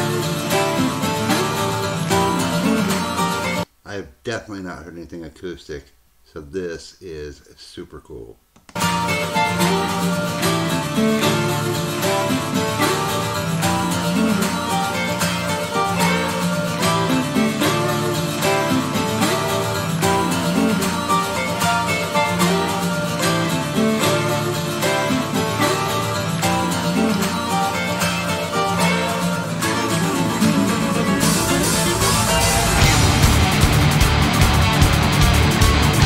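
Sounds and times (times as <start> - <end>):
acoustic guitar plucked melody: 0.0 - 3.7, 8.8 - 36.0.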